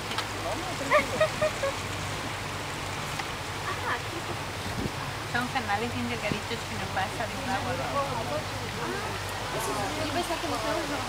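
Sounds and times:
boat motor humming: 0.0s - 11.0s.

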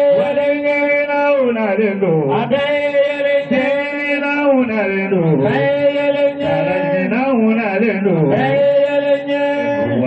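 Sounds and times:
men chanting religious song: 0.0s - 10.0s.

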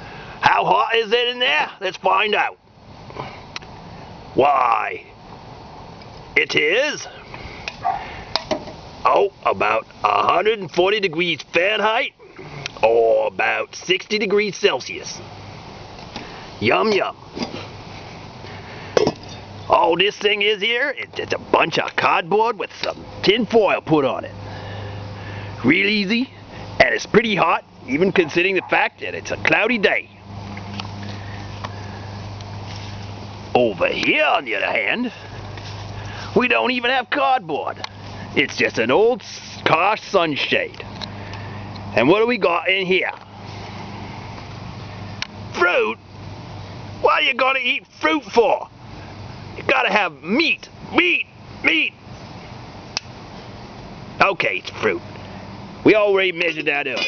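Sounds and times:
background hiss: 0.0s - 57.0s
steady low hum: 0.0s - 57.0s.

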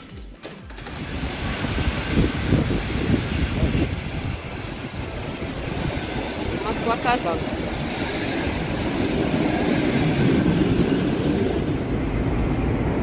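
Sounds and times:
keys clicking in door lock: 0.0s - 1.1s
electric train rumbling: 0.0s - 13.0s.

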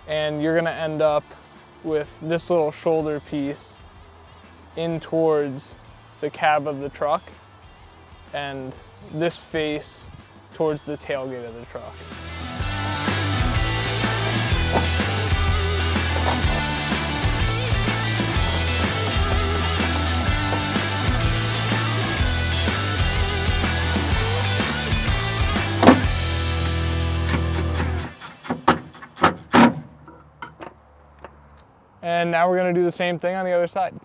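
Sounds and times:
background music with bass line: 0.0s - 28.2s
sharp clicks and knocks: 25.8s - 31.7s.

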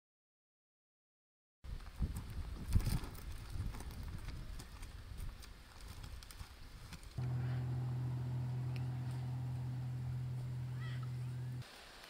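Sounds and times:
low rumble: 7.2s - 11.6s.

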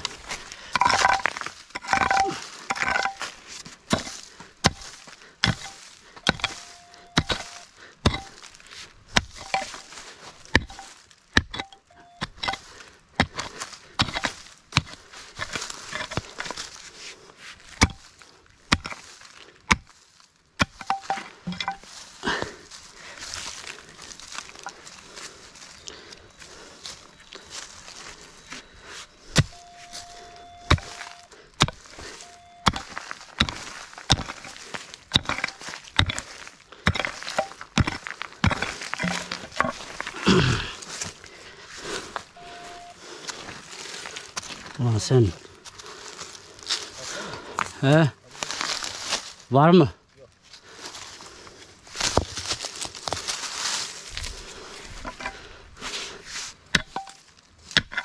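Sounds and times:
pickaxe digging stony soil: 0.0s - 16.9s, 17.5s - 20.0s, 20.6s - 22.5s, 26.9s - 45.3s, 52.0s - 55.4s, 56.5s - 58.0s.

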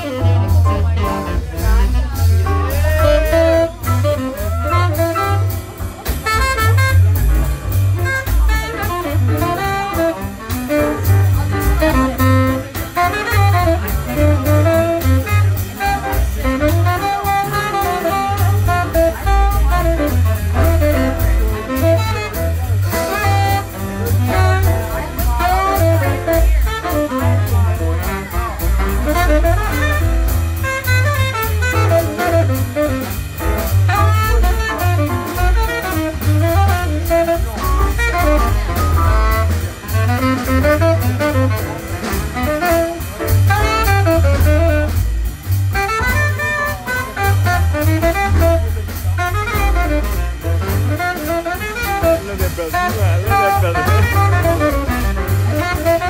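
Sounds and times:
double bass: 0.0s - 56.0s
drums: 0.0s - 56.0s
grand piano: 0.0s - 56.0s
saxophone melody: 0.0s - 56.0s.

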